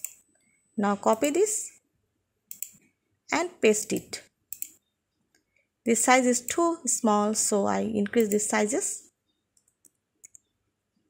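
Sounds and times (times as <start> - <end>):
keyboard and mouse clicks: 0.0 - 0.2, 1.1 - 1.4, 2.5 - 2.8, 3.9 - 4.8, 8.1 - 8.5, 9.5 - 10.5.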